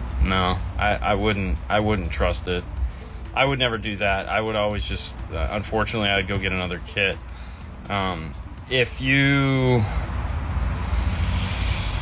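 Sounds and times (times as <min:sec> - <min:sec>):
loud mechanical rumble: 0:09.7 - 0:12.0
rushing hiss: 0:10.8 - 0:12.0.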